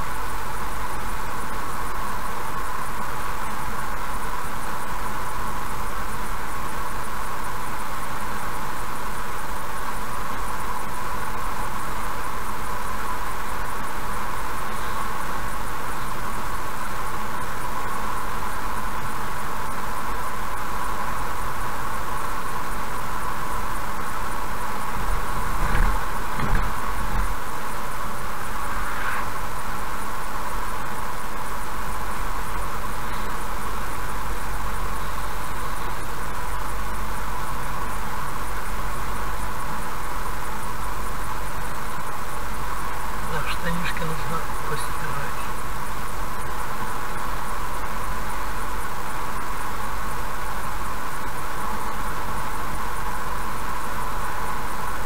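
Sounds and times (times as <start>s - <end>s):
road and tyre noise: 0.0s - 55.0s
wheels thumping over bridge joints: 25.0s - 27.6s.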